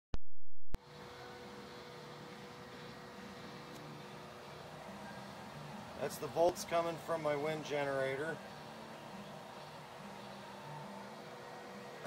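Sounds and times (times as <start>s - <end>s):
electric pump humming: 0.8s - 12.0s.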